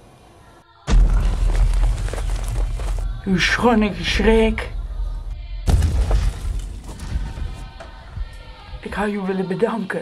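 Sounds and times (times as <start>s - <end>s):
footfalls through undergrowth: 0.9s - 3.3s
rustling undergrowth: 0.9s - 3.5s.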